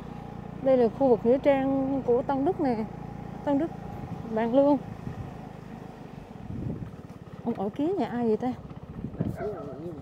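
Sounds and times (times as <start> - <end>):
motorbike engine at low speed: 0.0 - 10.0
wind on microphone: 6.4 - 7.0, 8.8 - 10.0.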